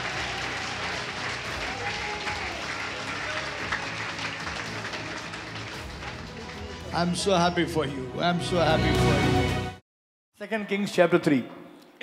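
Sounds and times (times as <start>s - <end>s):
congregation clapping: 0.0s - 7.8s.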